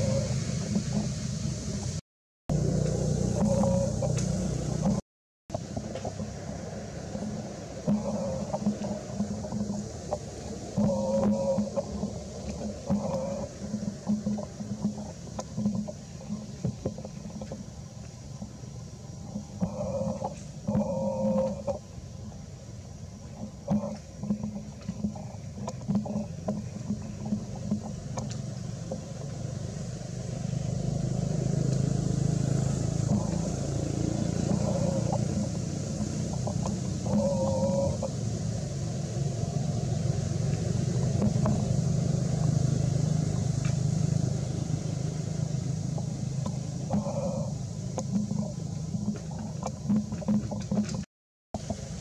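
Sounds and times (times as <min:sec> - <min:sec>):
low engine rumble: 0:00.0 - 0:52.0.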